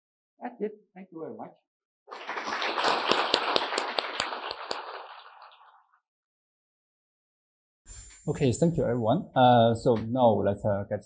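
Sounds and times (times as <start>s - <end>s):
audience applauding: 2.1s - 5.9s.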